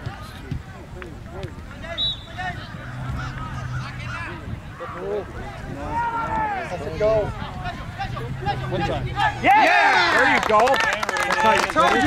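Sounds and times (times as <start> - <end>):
players and spectators shouting: 0.0 - 12.0
high whistle-like chirp: 2.0 - 2.4.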